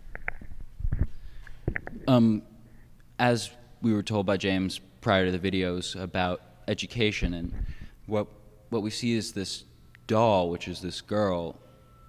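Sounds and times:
microphone handling thumps: 0.2 - 2.1, 7.2 - 8.0.

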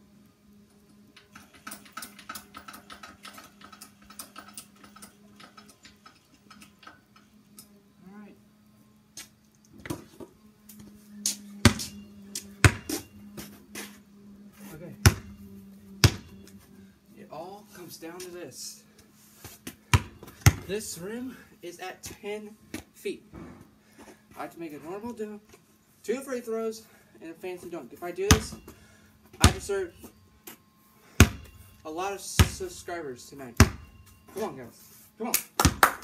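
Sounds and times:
low steady hum: 0.0 - 36.0
ratcheting clicks of hoop mechanism: 1.1 - 7.7
basketball bouncing on concrete: 11.3 - 13.1, 15.0 - 15.4, 16.0 - 16.4, 19.4 - 20.7, 28.3 - 29.7, 31.2 - 31.5, 32.4 - 32.8, 33.6 - 34.0, 35.6 - 36.0.

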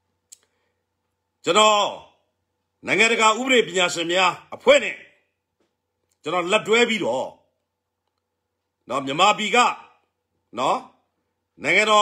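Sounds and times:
man speaking: 1.4 - 5.3, 6.2 - 7.5, 8.8 - 12.0.

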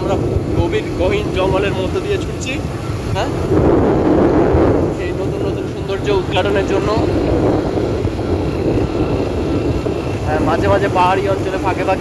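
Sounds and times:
motorcycle engine running: 0.0 - 12.0
wind buffeting microphone: 0.0 - 12.0.

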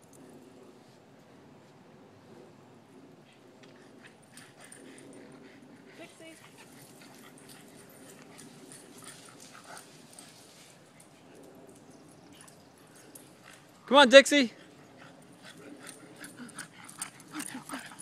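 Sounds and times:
dogs moving about: 3.6 - 13.9.

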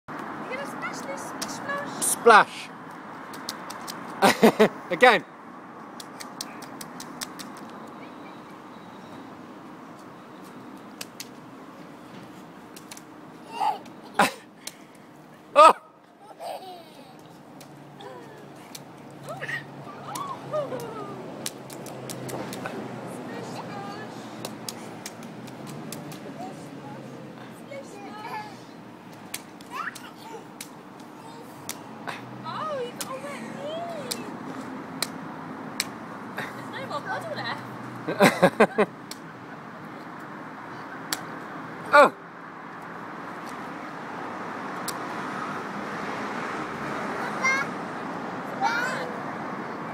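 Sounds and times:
faint outdoor background noise: 0.1 - 49.9.

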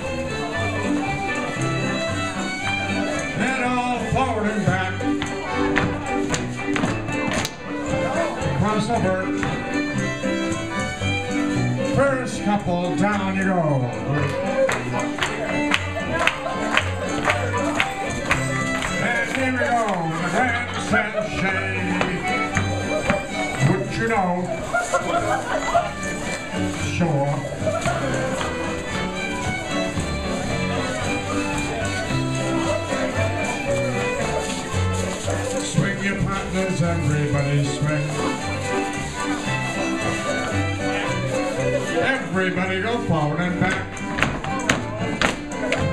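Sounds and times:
dancers' feet tapping wooden floor: 0.0 - 45.9
folk dance band playing: 0.0 - 45.9
guitar accompaniment: 0.0 - 45.9
keyboard accompaniment: 0.0 - 45.9.

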